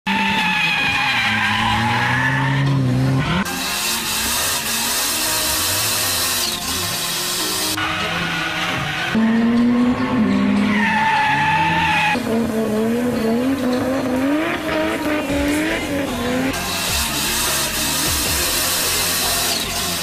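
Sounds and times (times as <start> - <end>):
car engine revving: 0.1 - 20.0.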